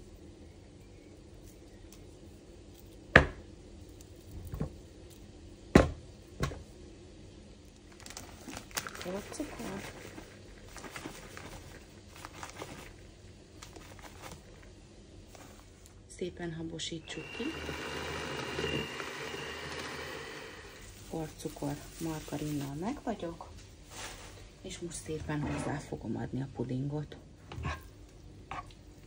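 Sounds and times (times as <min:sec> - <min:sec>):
plastic bag crinkling: 0:07.8 - 0:14.7, 0:17.9 - 0:23.2.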